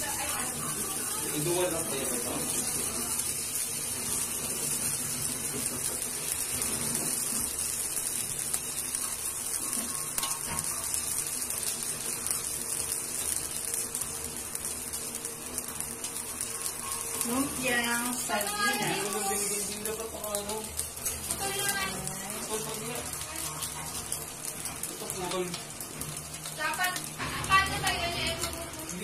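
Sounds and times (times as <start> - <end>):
spring rolls sizzling in oil: 0.0 - 29.0.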